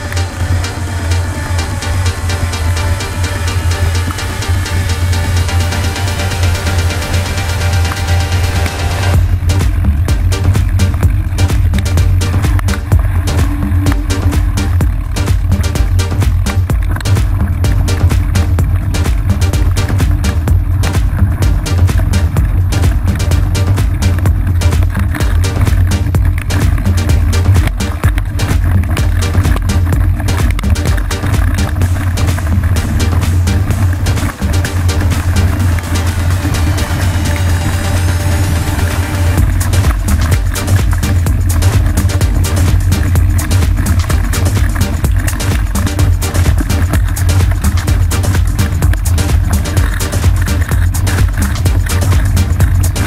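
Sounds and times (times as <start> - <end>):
electronic dance music: 0.0 - 53.0.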